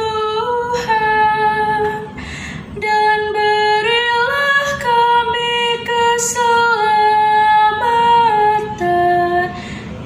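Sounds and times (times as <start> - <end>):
woman singing unaccompanied: 0.0 - 2.1, 2.8 - 9.6.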